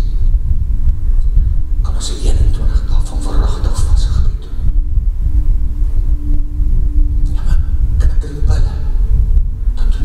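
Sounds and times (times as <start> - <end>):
loud low rumble: 0.0 - 10.0
steady held tone: 0.0 - 10.0.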